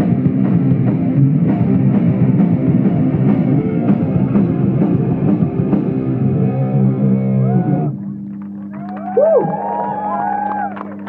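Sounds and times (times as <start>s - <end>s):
rock band final chord: 0.0s - 8.0s
guitar amplifier hum: 0.0s - 11.0s
audience whooping and cheering: 7.2s - 11.0s
people clapping: 8.2s - 11.0s.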